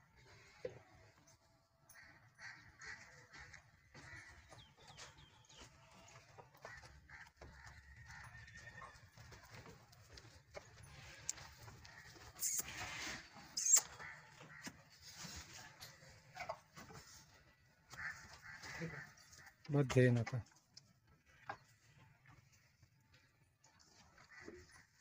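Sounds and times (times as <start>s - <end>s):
cattle moving about: 2.4s - 19.6s.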